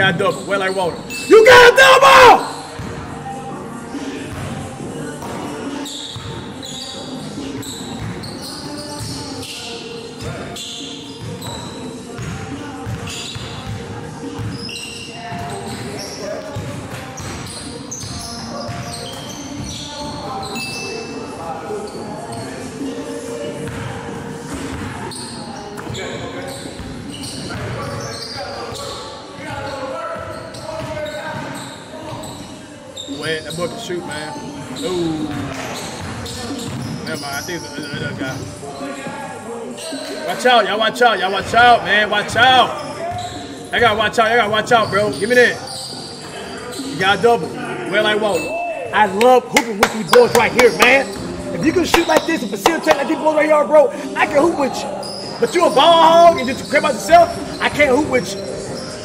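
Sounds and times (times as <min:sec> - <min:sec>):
shoe squeaks: 0:00.0 - 0:01.4, 0:03.9 - 0:23.9, 0:24.5 - 0:59.0
players calling out: 0:00.0 - 0:02.7, 0:46.7 - 0:58.7
players' voices echoing: 0:00.0 - 0:20.6, 0:32.6 - 0:59.0.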